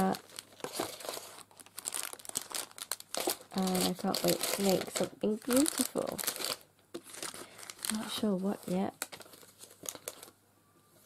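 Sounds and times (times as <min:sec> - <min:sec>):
cellophane crinkling: 0:00.0 - 0:10.4
plastic packs rustling: 0:00.0 - 0:10.4.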